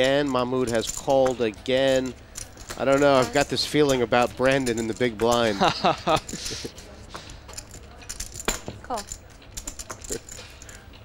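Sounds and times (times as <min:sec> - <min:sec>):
poker chips clicking together: 0:00.0 - 0:11.0.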